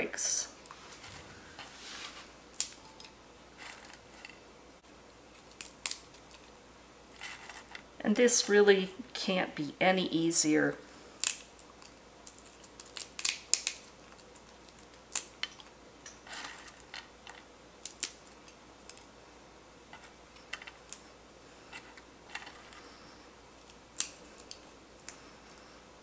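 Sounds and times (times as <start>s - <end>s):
vanilla beans snapping: 2.5s - 4.4s, 5.3s - 6.5s, 11.2s - 19.2s, 20.0s - 21.1s, 21.8s - 25.7s.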